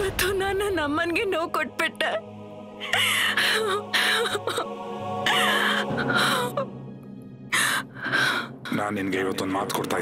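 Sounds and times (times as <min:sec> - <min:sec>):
woman sobbing: 0:02.8 - 0:06.8.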